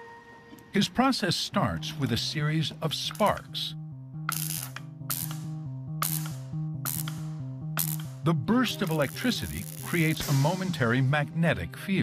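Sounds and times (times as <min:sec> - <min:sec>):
electric sparks crackling: 0:08.8 - 0:10.6.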